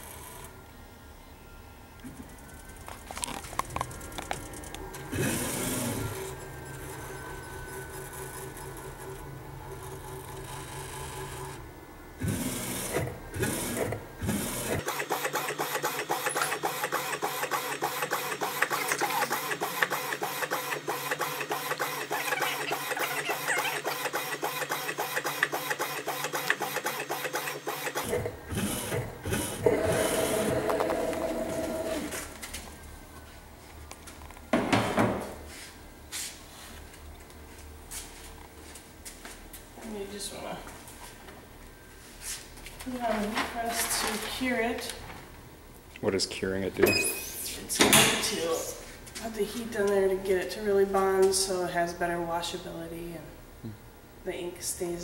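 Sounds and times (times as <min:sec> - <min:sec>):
steady mechanical tone: 0:00.0 - 0:33.2
printer motor hum: 0:02.1 - 0:32.4.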